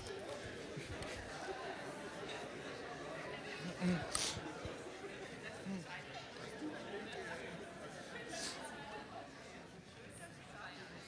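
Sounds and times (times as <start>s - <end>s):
crowd chatter in a hall: 0.0s - 11.0s.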